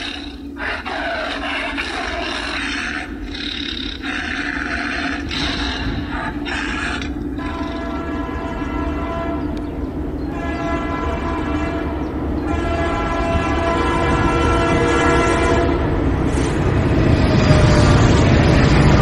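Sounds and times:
train rumble: 0.0s - 19.0s
train horn blasts: 7.2s - 18.1s.

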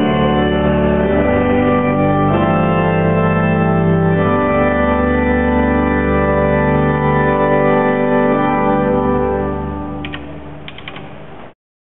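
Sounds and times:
church organ chord: 0.0s - 10.2s
sharp mechanical clicks: 10.0s - 11.2s.

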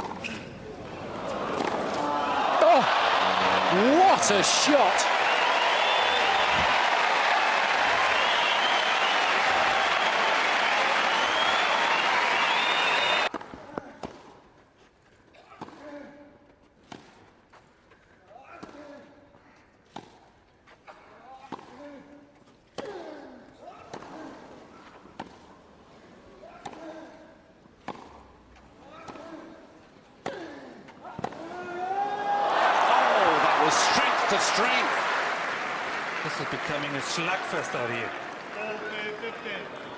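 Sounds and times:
crowd cheering: 0.8s - 13.3s, 31.3s - 39.9s.

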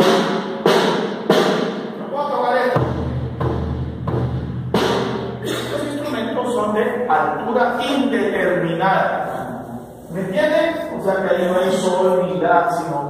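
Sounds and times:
snare drum hits: 0.0s - 1.9s.

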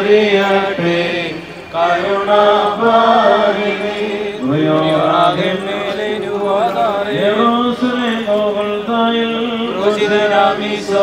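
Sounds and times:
voices chanting a hymn: 0.0s - 11.0s.

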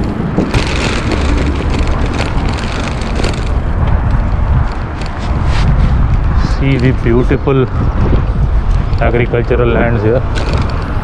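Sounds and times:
tyres rolling on road: 0.0s - 11.0s
wind buffeting microphone: 0.0s - 11.0s.

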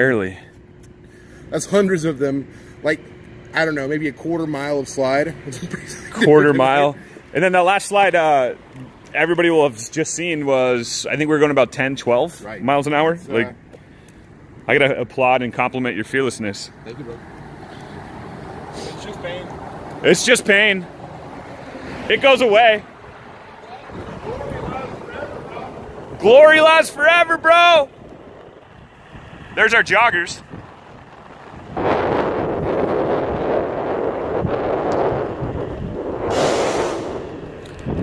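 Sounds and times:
electric boards rolling on asphalt: 0.1s - 38.0s
brief hiss: 18.7s - 19.2s, 36.2s - 37.4s
wind rushing over microphone: 19.3s - 38.0s.

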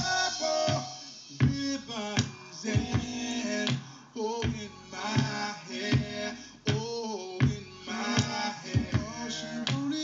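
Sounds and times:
pitched instrumental music: 0.0s - 3.7s.

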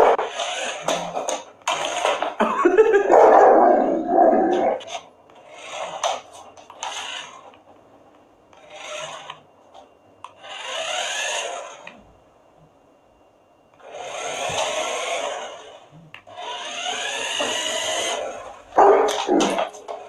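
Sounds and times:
toy car motor whirring: 0.0s - 2.2s, 4.8s - 7.6s, 8.5s - 9.4s, 10.2s - 12.0s, 13.8s - 20.0s.

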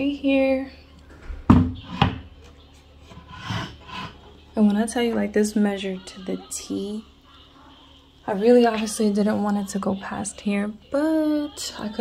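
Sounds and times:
wooden knock: 1.5s - 2.2s.

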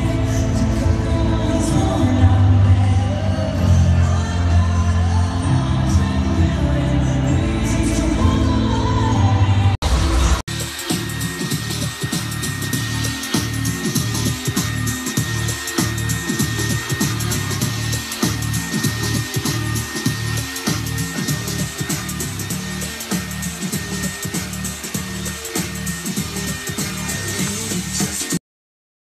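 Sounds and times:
music playing: 0.0s - 28.4s
hair dryer running: 9.9s - 28.4s.

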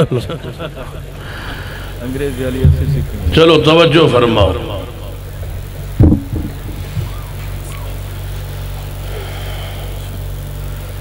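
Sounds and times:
low electrical hum: 0.0s - 11.0s
loud bump on microphone: 6.0s - 7.1s.

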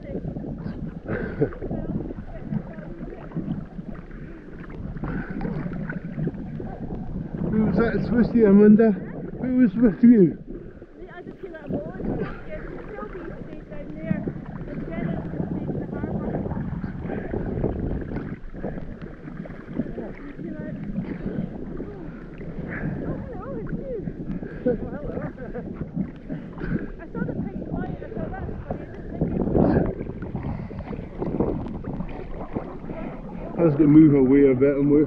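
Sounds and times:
seawater sloshing and lapping: 0.0s - 35.0s
wind buffeting microphone: 0.0s - 35.0s.

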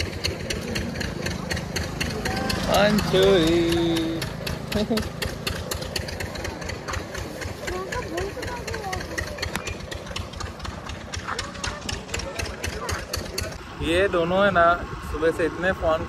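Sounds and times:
vehicle engine running: 0.0s - 16.0s
faint voices: 5.8s - 16.0s.

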